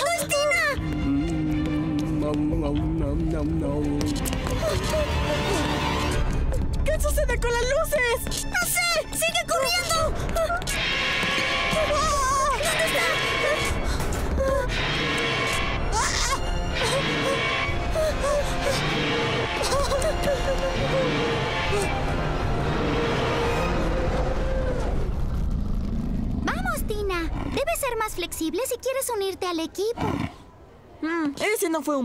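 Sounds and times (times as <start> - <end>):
tense horror background music: 0.0 - 28.3
cry sweeping in pitch: 10.7 - 13.8, 14.4 - 25.2.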